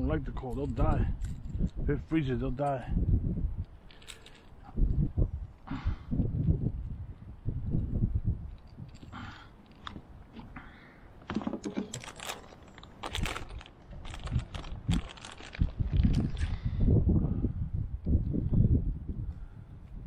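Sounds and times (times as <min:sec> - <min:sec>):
pliers clicking and rustling: 0:11.2 - 0:13.8.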